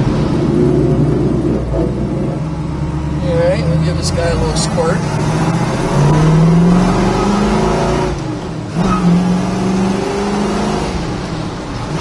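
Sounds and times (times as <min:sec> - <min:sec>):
car engine running: 0:00.0 - 0:08.9
road noise: 0:00.0 - 0:12.0.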